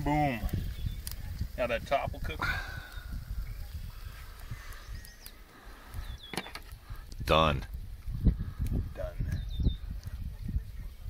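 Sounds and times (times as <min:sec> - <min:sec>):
wind rumbling on microphone: 0:00.0 - 0:11.0
faint bird chirps: 0:02.7 - 0:06.6.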